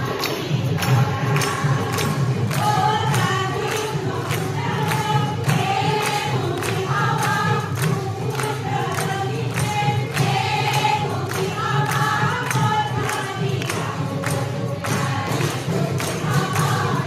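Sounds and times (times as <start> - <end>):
crowd of women singing: 0.0 - 17.0
hand-clapping: 0.0 - 17.0.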